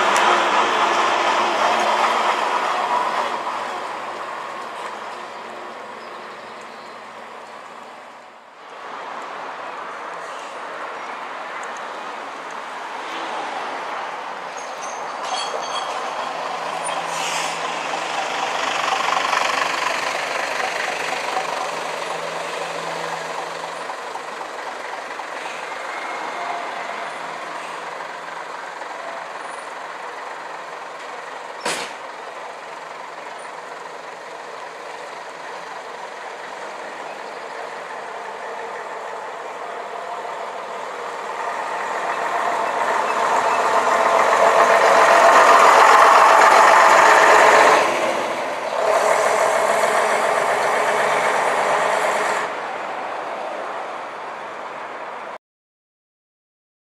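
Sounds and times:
bus diesel engines pulling away: 0.0s - 55.4s.

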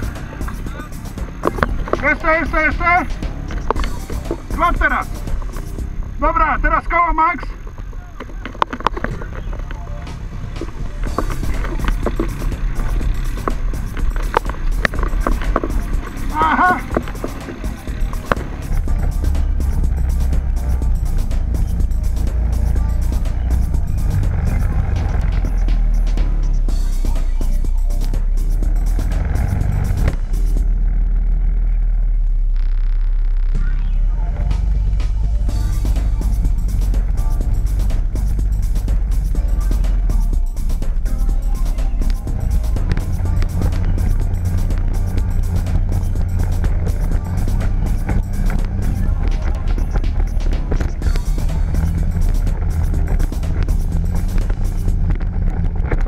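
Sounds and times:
voices: 0.0s - 31.0s, 33.4s - 56.0s
music: 0.0s - 31.8s, 33.3s - 56.0s
quad bike engines: 0.0s - 56.0s.

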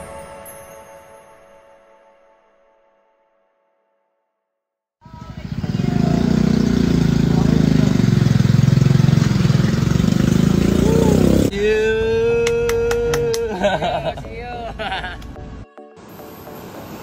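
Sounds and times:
vehicle engine running: 5.0s - 11.5s
people talking: 5.0s - 15.0s.

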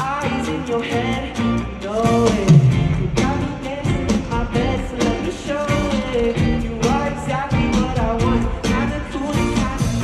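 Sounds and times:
live pop band with electric guitar: 0.0s - 10.0s
man singing lead vocal: 0.0s - 10.0s.

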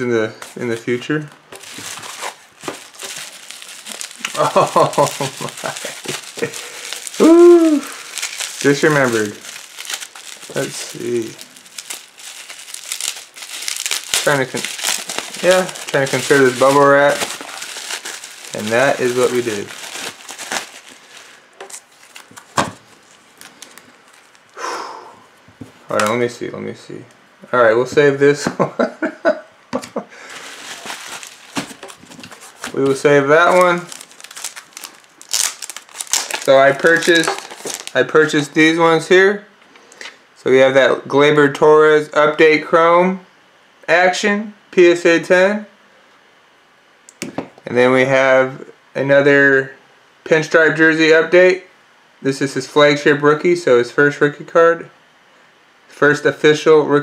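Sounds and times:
bubble wrap crinkling: 0.4s - 24.6s, 30.2s - 38.6s
packing material rustling: 0.4s - 24.6s, 30.2s - 38.4s.

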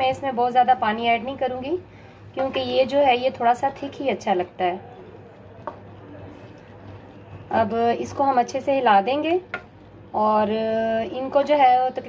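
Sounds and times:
wooden spoon stirring curry: 5.2s - 8.4s.

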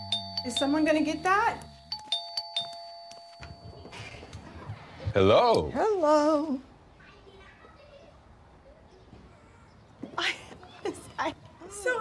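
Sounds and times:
two-tone doorbell chime: 0.0s - 4.4s.

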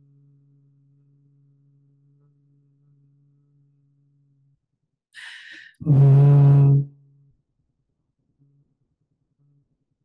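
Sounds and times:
woman humming: 5.2s - 6.9s.

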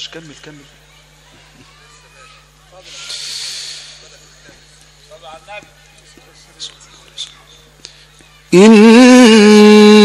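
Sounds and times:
sound system hum: 2.4s - 10.0s
breath into microphone: 2.9s - 4.1s.

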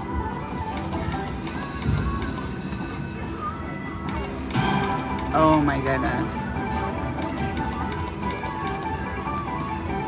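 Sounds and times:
low casino hum: 0.0s - 10.0s
slot machine spin music: 0.5s - 10.0s.

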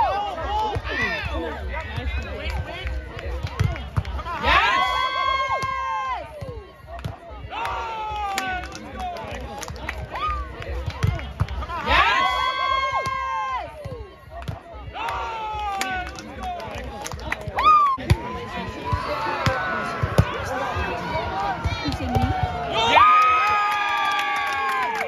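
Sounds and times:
players shouting: 0.0s - 25.0s.

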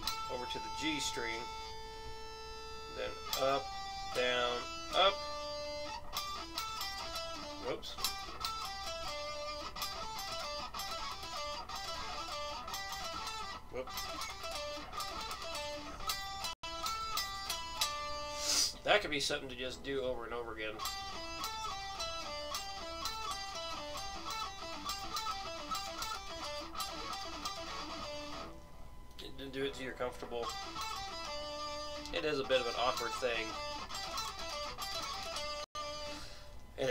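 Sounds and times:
electric guitar picked notes: 0.0s - 36.9s.

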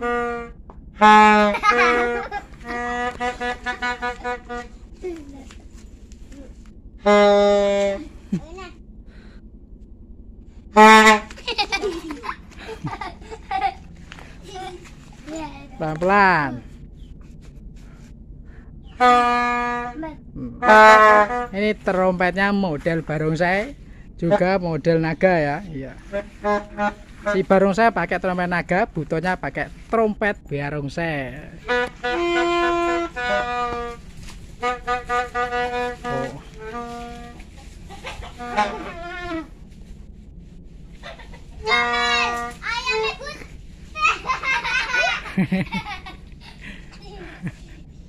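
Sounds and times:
toy trumpet toots: 0.0s - 4.8s, 7.0s - 8.0s, 10.8s - 11.4s, 19.0s - 20.0s, 31.6s - 34.0s, 34.6s - 37.4s, 38.0s - 39.5s, 41.6s - 42.7s.

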